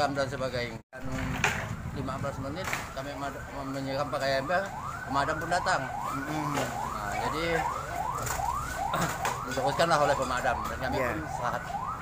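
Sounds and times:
emergency siren yelping: 0:02.2 - 0:12.0.

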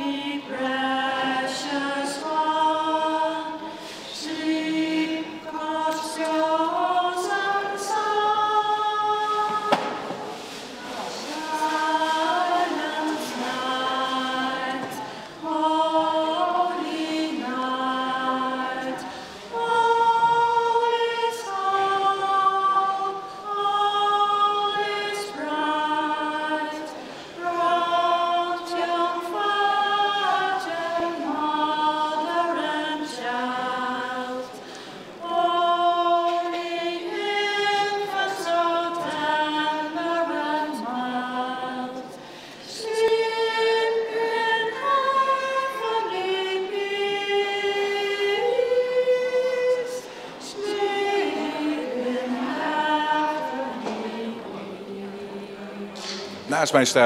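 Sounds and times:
women singing a cappella: 0:00.0 - 0:56.4.

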